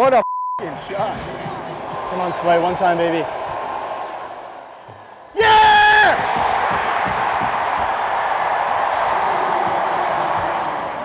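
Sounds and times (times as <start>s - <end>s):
arena crowd noise: 0.6s - 11.0s
man shouting: 5.4s - 6.2s.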